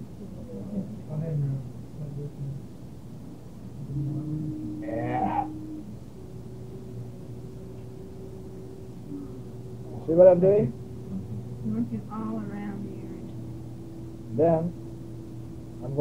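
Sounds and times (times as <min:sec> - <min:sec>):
low hum: 0:00.0 - 0:16.0
massage unit humming tone: 0:00.0 - 0:16.0
short vocal sound: 0:03.8 - 0:05.8.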